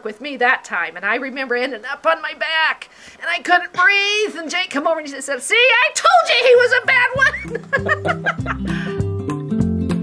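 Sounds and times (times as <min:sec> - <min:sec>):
woman laughing: 0:06.4 - 0:09.0
acoustic guitar plucked notes: 0:07.2 - 0:10.0.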